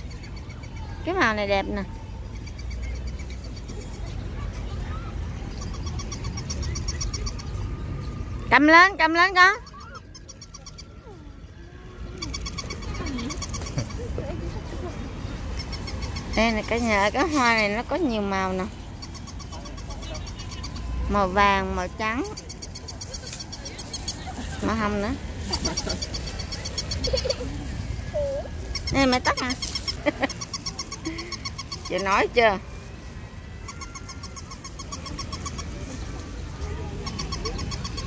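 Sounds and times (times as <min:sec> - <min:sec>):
toy dog whining yips: 0:28.0 - 0:28.9.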